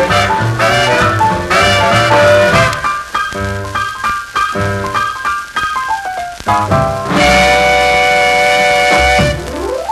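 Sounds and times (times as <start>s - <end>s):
jump blues band playing: 0.0s - 9.9s.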